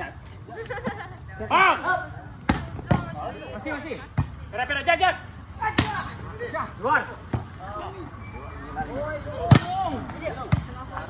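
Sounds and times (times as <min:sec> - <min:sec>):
volleyball smacks: 0:02.4 - 0:03.1.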